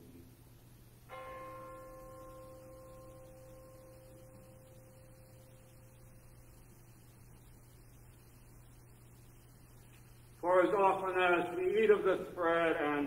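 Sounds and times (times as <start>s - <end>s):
bell ringing: 1.1s - 6.6s.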